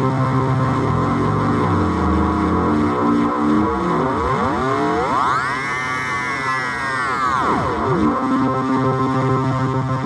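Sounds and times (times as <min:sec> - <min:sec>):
gritty bitcrushed synth sweeps: 0:00.0 - 0:10.0.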